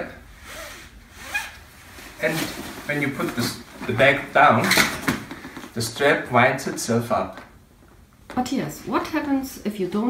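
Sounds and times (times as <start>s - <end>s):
fabric strap rubbing and sliding: 0.4s - 5.7s.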